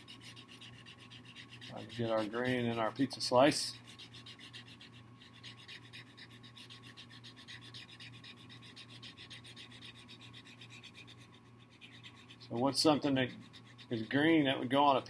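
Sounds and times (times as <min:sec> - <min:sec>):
marker scratching on paper: 0:00.0 - 0:15.0.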